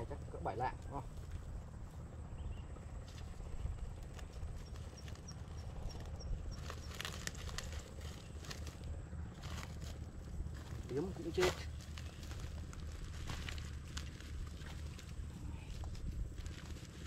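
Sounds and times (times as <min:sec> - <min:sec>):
steady low rumble: 0:00.0 - 0:17.0.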